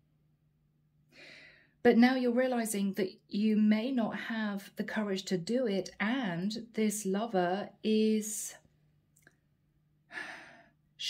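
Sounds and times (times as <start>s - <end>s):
woman breathing in: 1.1s - 1.8s, 10.1s - 10.8s.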